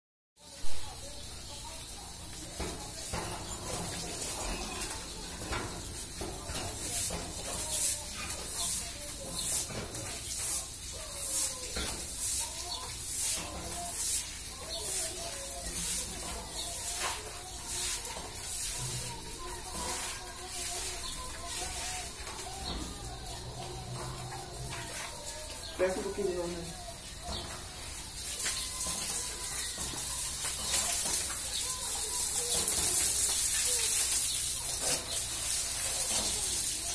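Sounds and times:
broom scrubbing wet tiled floor: 0.4 - 36.9
faint indistinct voices: 0.4 - 36.9.

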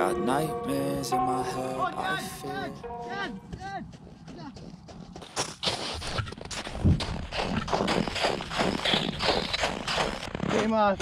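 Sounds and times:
footsteps crunching on snow: 3.0 - 10.6.

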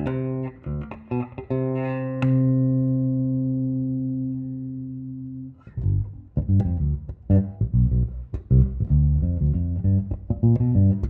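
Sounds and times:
electric bass plucked: 0.0 - 11.0.

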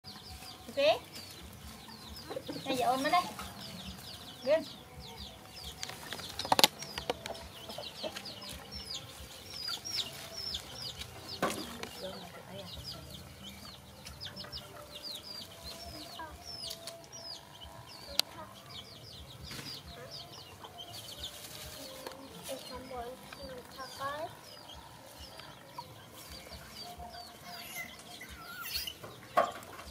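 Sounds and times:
chickens clucking: 0.0 - 29.9
chicks peeping: 0.0 - 29.9.

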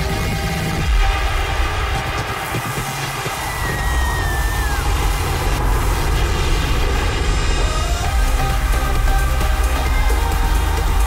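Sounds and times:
bass-heavy electronic music: 0.0 - 11.0.

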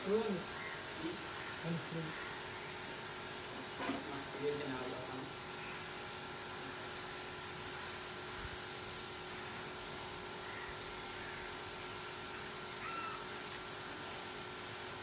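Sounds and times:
steady hiss: 0.0 - 15.0.

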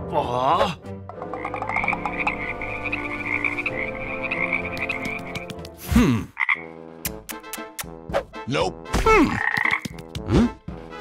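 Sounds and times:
frogs croaking: 1.1 - 5.5, 6.4 - 6.8, 9.3 - 10.0.

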